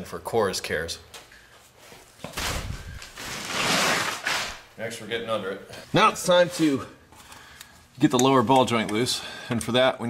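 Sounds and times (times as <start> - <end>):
rustling and scraping: 1.6 - 4.7.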